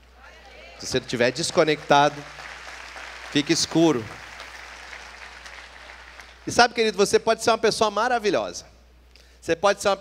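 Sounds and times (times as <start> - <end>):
faint applause: 0.4 - 6.4.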